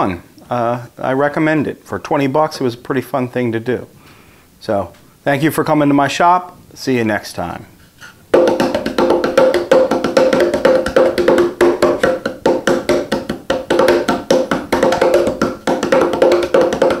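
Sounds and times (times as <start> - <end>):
bongo cajon hand slaps: 8.4 - 17.0.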